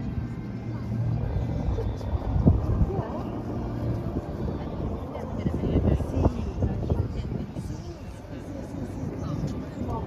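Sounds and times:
distant people talking: 0.0s - 10.0s
steady low hum: 0.0s - 10.0s.

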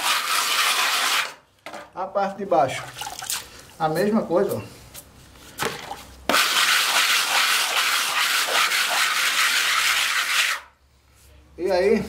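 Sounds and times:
hand float scraping cement: 0.0s - 1.4s, 6.3s - 10.7s.

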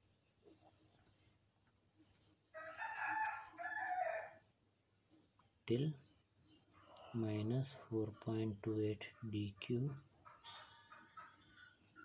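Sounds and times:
rooster crowing: 2.6s - 4.4s.

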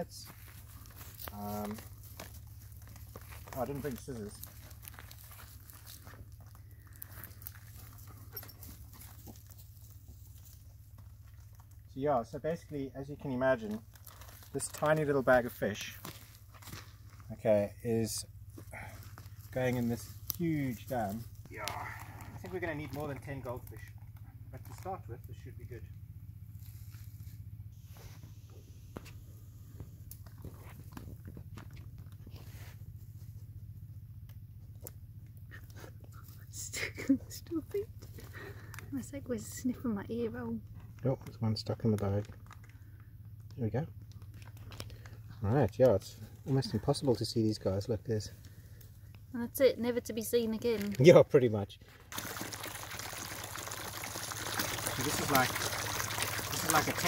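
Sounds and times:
low steady rumble: 0.0s - 51.0s
plastic bag crinkling in water: 0.3s - 8.1s, 13.6s - 16.8s, 19.2s - 23.9s, 24.6s - 24.9s, 41.8s - 42.8s, 44.1s - 45.2s, 50.6s - 51.2s, 52.0s - 57.0s
steady low hum: 23.3s - 41.0s.

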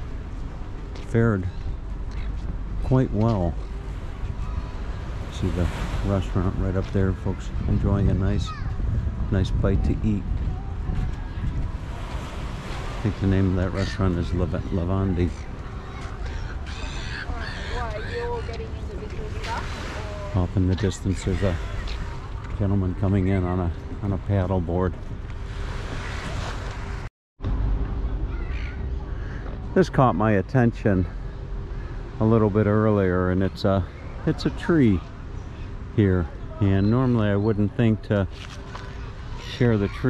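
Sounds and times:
wind buffeting microphone: 3.5s - 23.1s.

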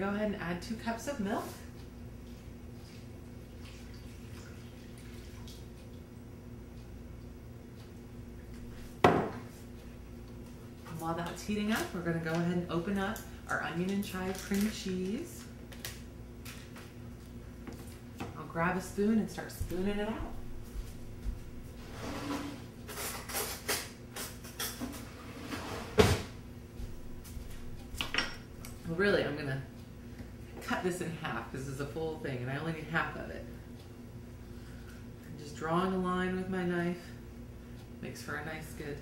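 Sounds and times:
kitchen cabinet knocks and clatters: 9.0s - 9.4s.

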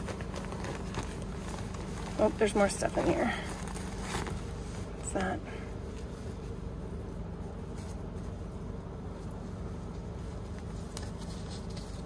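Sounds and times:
cloth pouch rustling: 0.0s - 5.2s
low mechanical hum: 0.0s - 12.0s.

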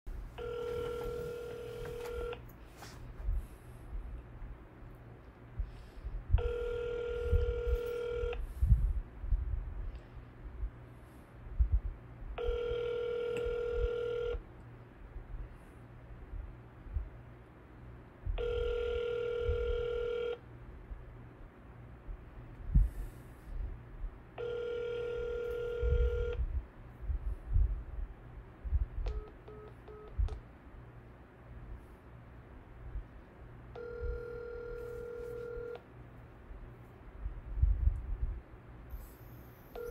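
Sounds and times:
phone electronic beep: 0.4s - 2.4s, 18.4s - 20.4s, 29.1s - 30.3s, 33.8s - 35.8s
short phone beeps: 0.4s - 2.4s, 6.4s - 8.4s, 12.4s - 14.4s, 18.4s - 20.4s, 24.4s - 26.4s, 29.1s - 30.4s, 33.8s - 35.8s
telephone ringback tone: 0.4s - 2.4s, 6.4s - 8.4s, 12.4s - 14.4s, 18.4s - 20.4s, 24.4s - 26.4s, 29.1s - 30.3s, 33.8s - 35.8s, 39.6s - 39.9s.

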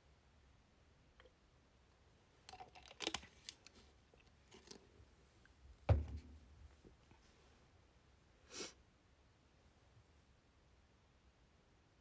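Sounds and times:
plastic bottle crinkling: 2.5s - 4.9s.

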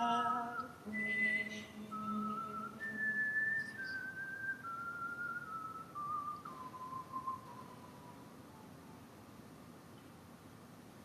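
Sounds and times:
whistled melody: 0.4s - 8.1s.

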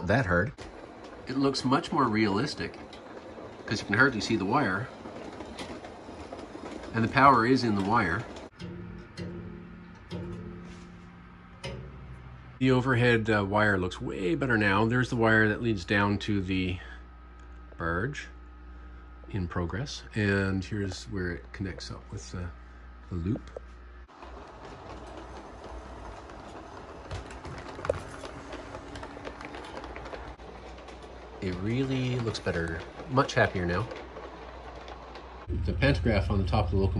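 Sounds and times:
model train motor humming: 0.0s - 8.5s, 24.2s - 36.9s
wheels clicking over rails: 0.0s - 36.9s
plucked steel wire twanging: 8.5s - 12.6s.

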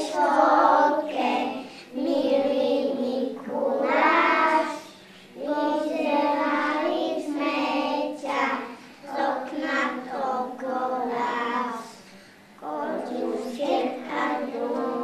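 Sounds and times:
children singing together: 0.0s - 15.0s.

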